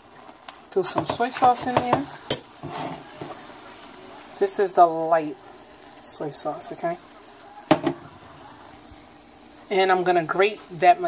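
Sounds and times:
food sizzling in a pan: 0:00.0 - 0:11.0
metal fork clinking on pan: 0:01.1 - 0:02.5.

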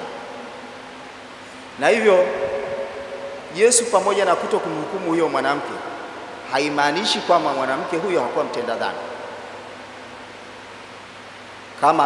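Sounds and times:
room noise hiss: 0:00.0 - 0:12.0
man speaking into microphone: 0:01.8 - 0:02.9, 0:03.5 - 0:09.2, 0:11.8 - 0:12.0.

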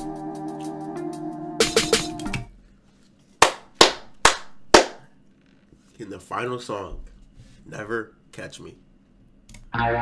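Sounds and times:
sharp hand claps: 0:03.4 - 0:05.1.

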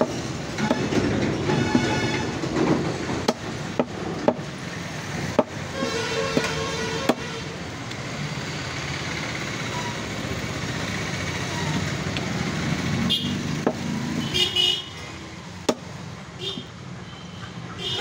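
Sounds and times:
outdoor street noise: 0:00.0 - 0:18.0
cleaver chopping on wooden block: 0:03.2 - 0:04.4, 0:15.6 - 0:15.9.

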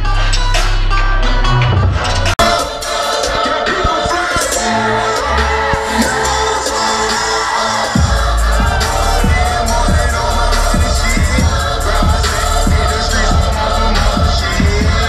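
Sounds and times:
loud electronic dance music: 0:00.0 - 0:15.0
crowd shouting: 0:02.4 - 0:15.0.

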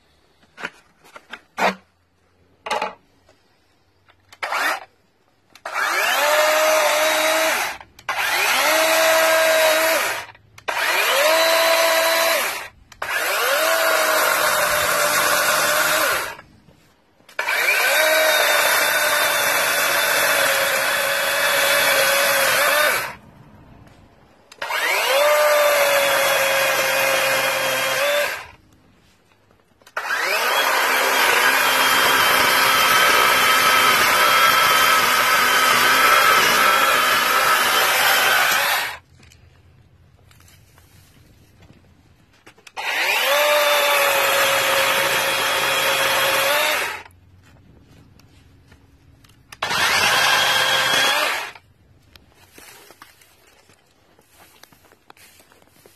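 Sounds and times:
battery chainsaw whining and cutting: 0:04.3 - 0:16.5, 0:17.3 - 0:23.2, 0:24.5 - 0:28.6, 0:29.8 - 0:39.0, 0:42.6 - 0:47.1, 0:49.5 - 0:51.6.

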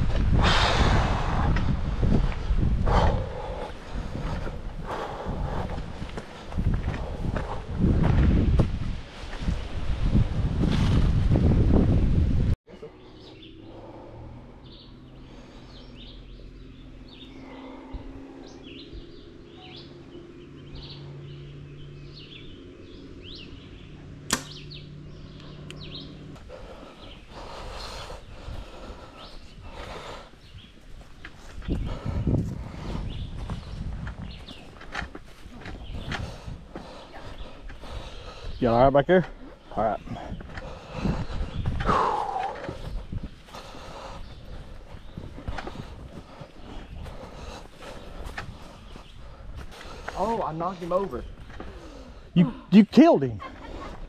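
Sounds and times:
small birds chirping: 0:00.0 - 0:08.0, 0:12.7 - 0:54.0
wind buffeting microphone: 0:00.0 - 0:12.6, 0:13.4 - 0:52.4
bow shot snap: 0:24.3 - 0:24.6.

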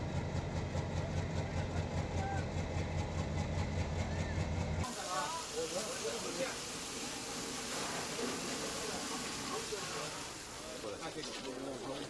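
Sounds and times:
hose water hissing: 0:04.8 - 0:12.0
people talking: 0:04.9 - 0:06.6, 0:07.7 - 0:12.0.

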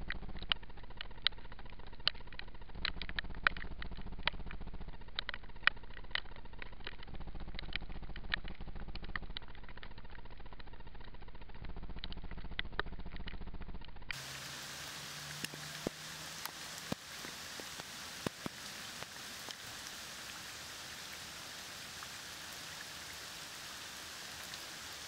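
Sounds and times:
drip ticks: 0:00.0 - 0:11.1, 0:15.2 - 0:24.9
rain falling on water: 0:00.0 - 0:13.4, 0:14.1 - 0:25.0.

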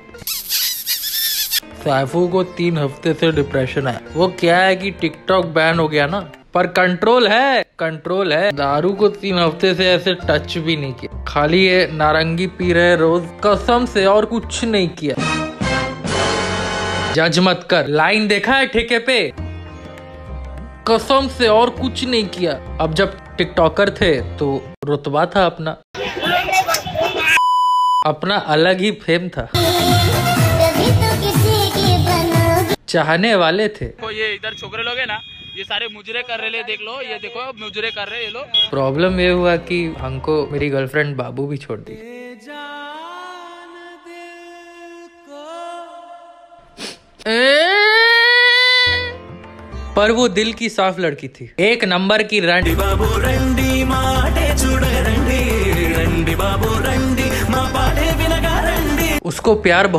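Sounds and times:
squeaky comedy sound effect: 0:00.1 - 0:01.7
high-pitched censor bleep: 0:27.4 - 0:28.1.

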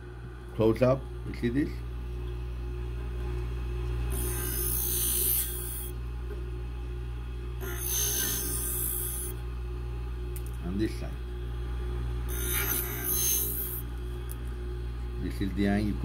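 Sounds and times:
high grinding of blade: 0:04.1 - 0:05.9, 0:07.6 - 0:09.4, 0:12.3 - 0:13.9
scissor sharpener humming: 0:04.1 - 0:06.0, 0:07.5 - 0:09.4, 0:12.2 - 0:14.6.

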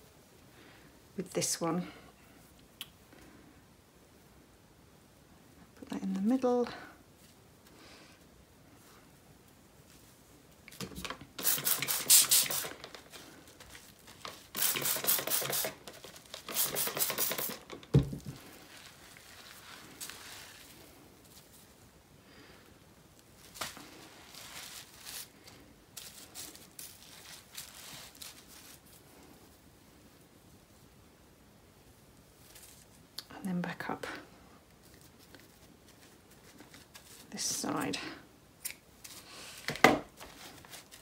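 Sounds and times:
bubble wrap crinkling: 0:10.7 - 0:21.9, 0:23.1 - 0:29.6, 0:32.2 - 0:33.2, 0:34.7 - 0:37.5, 0:38.6 - 0:41.0
thump: 0:17.9 - 0:18.4
yarn rustling and scraping on felt: 0:18.3 - 0:22.0, 0:23.2 - 0:31.0, 0:32.2 - 0:33.1, 0:34.6 - 0:37.9, 0:40.2 - 0:41.0.

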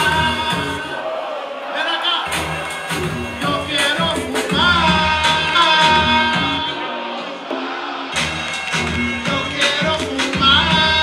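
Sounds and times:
hip-hop music through club speakers: 0:00.0 - 0:01.2, 0:01.8 - 0:11.0.

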